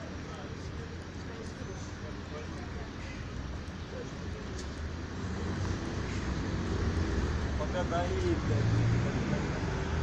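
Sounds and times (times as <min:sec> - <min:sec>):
road traffic engine rumble: 0:00.0 - 0:10.0.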